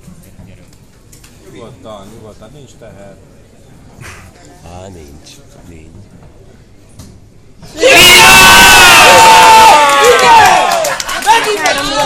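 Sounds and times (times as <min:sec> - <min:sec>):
crowd cheering and yelling: 0:07.7 - 0:12.0.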